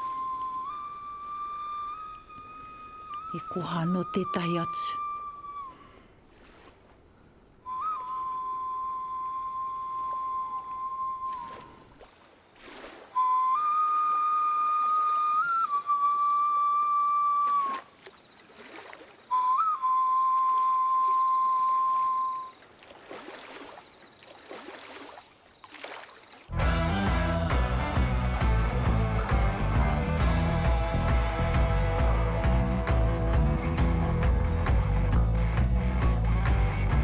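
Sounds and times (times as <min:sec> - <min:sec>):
small flute long notes: 0:00.0 - 0:06.0, 0:07.6 - 0:11.9, 0:13.2 - 0:17.9, 0:19.3 - 0:22.6.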